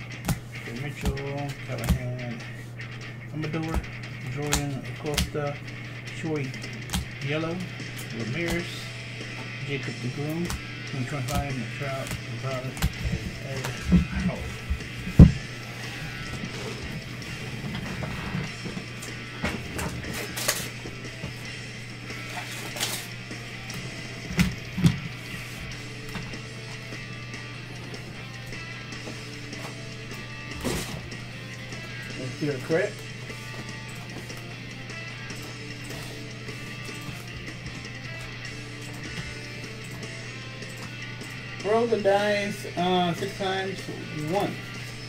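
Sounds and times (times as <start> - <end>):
low background music: 0.0 - 45.0
steady hum: 0.0 - 45.0.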